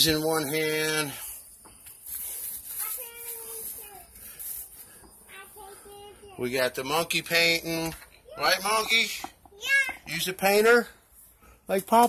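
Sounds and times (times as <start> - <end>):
young child's high-pitched voice: 2.7 - 4.6, 5.2 - 6.5, 8.2 - 8.7, 9.5 - 10.1.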